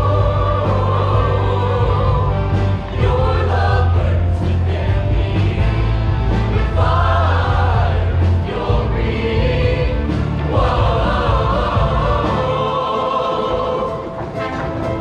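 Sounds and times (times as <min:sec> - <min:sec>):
strong steady bass: 0:00.0 - 0:12.6
choir singing: 0:00.0 - 0:15.0
live band playing: 0:13.9 - 0:15.0.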